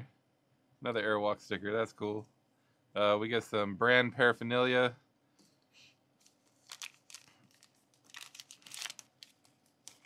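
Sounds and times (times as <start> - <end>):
plastic wrapper crinkling: 6.2 - 10.0.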